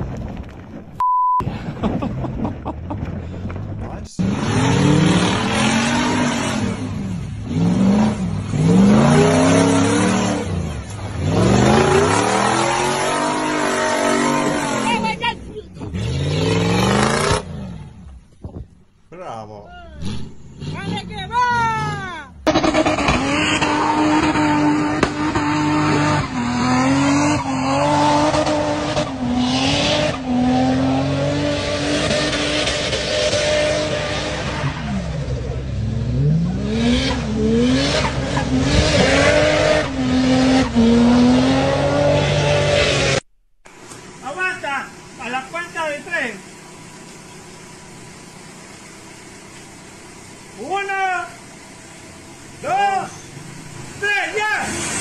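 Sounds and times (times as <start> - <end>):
engine revving hard: 4.2 - 15.2, 15.8 - 18.0, 20.0 - 43.3, 54.0 - 55.0.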